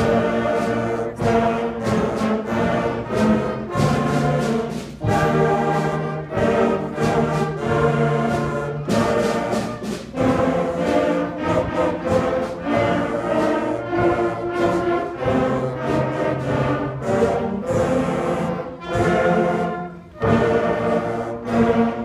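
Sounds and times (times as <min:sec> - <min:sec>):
concert band playing a march: 0:00.0 - 0:22.0.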